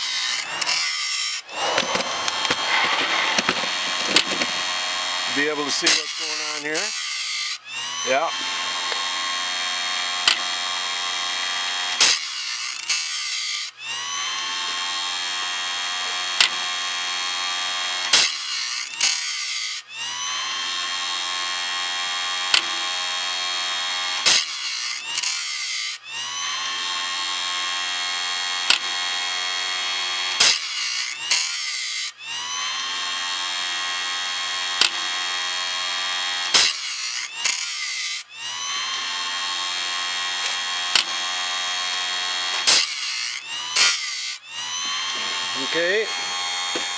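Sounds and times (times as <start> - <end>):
grinding wheel on tooth: 0.0 - 15.2, 15.8 - 33.0, 33.6 - 46.9
grinder motor whine: 0.0 - 46.9.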